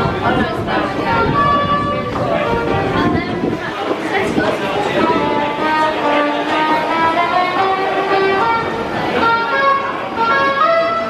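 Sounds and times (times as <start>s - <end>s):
melody of held notes: 0.0s - 11.0s.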